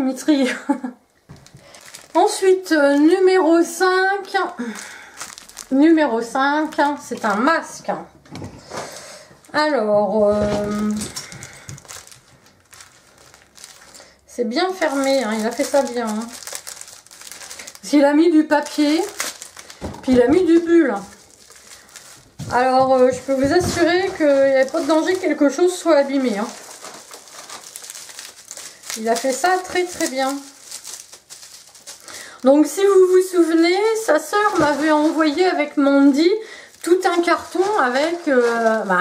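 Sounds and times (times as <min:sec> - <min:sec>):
packaging crackling and rustling: 0:01.3 - 0:07.8, 0:08.7 - 0:39.0.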